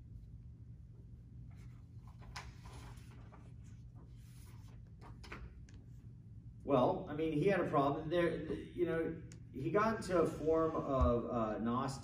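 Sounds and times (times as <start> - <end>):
steady low hum: 0.0 - 12.0
paper rustling: 1.5 - 5.5.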